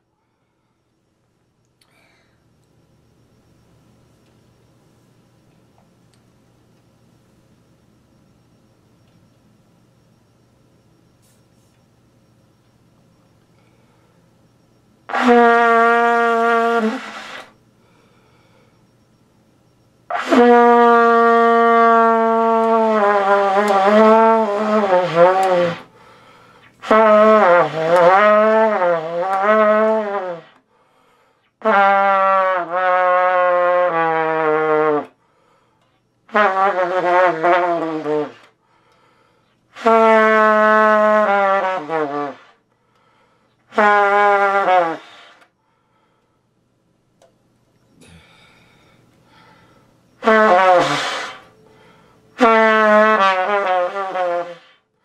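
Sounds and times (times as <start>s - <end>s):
trumpet held note: 15.1s - 17.5s, 50.2s - 51.5s, 52.4s - 54.8s
trumpet playing: 15.1s - 17.5s, 20.1s - 25.9s, 26.8s - 30.6s, 31.6s - 35.1s, 36.3s - 38.5s, 39.8s - 42.6s, 43.7s - 45.4s, 50.2s - 51.5s, 52.3s - 54.8s.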